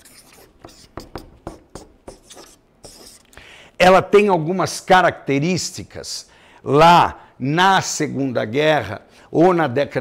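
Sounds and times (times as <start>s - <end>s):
marker pen scratching on paper: 0.0s - 3.3s.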